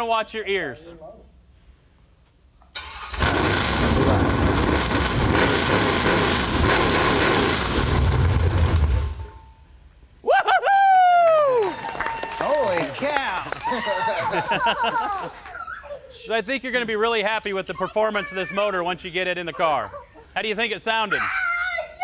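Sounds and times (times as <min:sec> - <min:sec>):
engine starter: 0:02.7 - 0:04.4
loud engine running: 0:03.1 - 0:09.2
voices crying out: 0:17.6 - 0:22.0.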